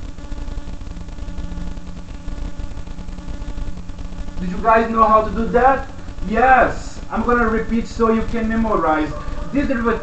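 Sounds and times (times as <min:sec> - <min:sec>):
machine hum with hiss: 0:00.0 - 0:10.0.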